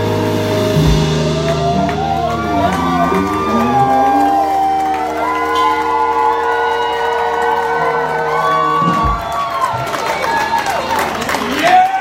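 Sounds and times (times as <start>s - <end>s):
band chord ringing out: 0.0s - 8.8s
audience cheering and whooping: 0.0s - 12.0s.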